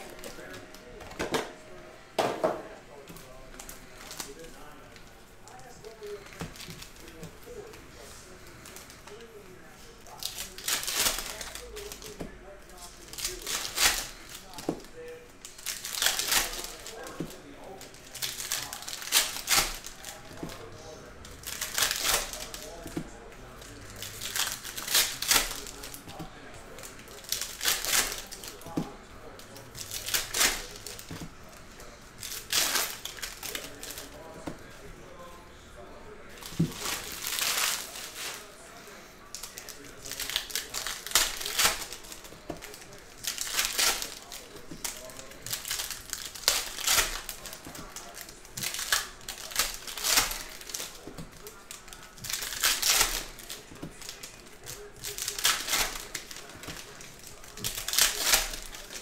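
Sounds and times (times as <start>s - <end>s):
foil packs crinkling and tearing: 0.0s - 1.7s, 2.9s - 35.2s, 36.2s - 59.0s.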